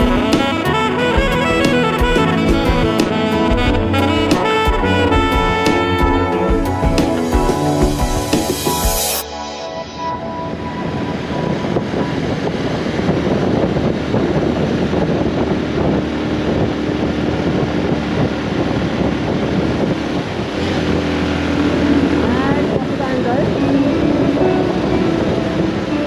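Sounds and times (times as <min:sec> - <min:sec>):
motorcycle engine running: 0:00.0 - 0:09.0, 0:11.2 - 0:26.0
wind rushing over microphone: 0:10.0 - 0:26.0.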